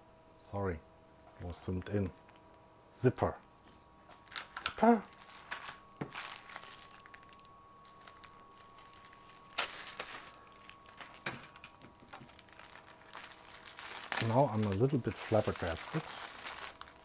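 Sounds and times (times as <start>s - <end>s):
plastic bag crinkling: 4.1s - 17.0s.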